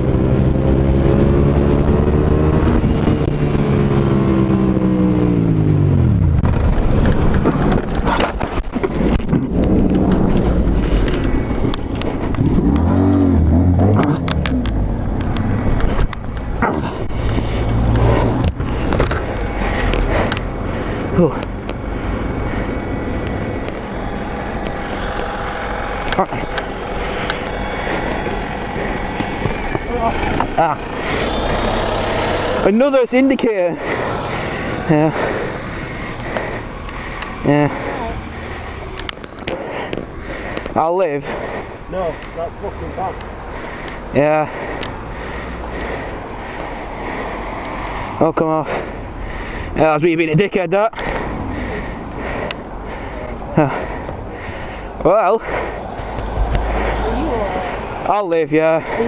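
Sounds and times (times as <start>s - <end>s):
motorcycle crashing and scraping: 6.0s - 20.4s
motorcycle engine winding down: 21.2s - 40.5s.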